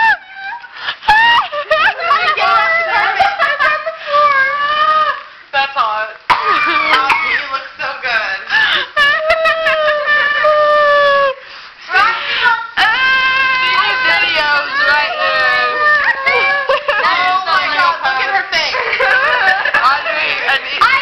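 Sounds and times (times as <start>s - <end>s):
children squealing and crying out: 6.4s - 7.4s, 12.7s - 17.2s.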